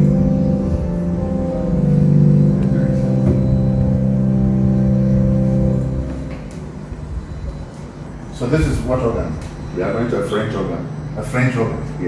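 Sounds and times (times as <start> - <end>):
pipe organ chord: 0.0 - 12.0.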